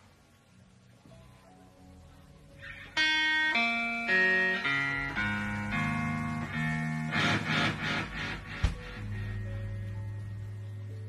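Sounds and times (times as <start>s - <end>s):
guitar playing ringing chords: 2.5s - 11.0s.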